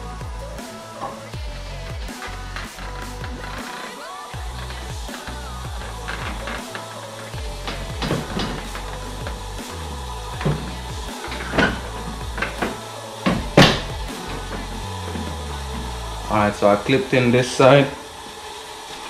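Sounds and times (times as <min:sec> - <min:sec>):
background music with bass line: 0:00.0 - 0:18.8.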